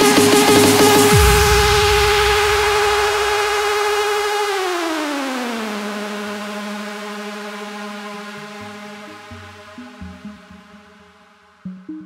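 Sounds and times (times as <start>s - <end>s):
synthesizer tone bending down: 0.0s - 12.0s.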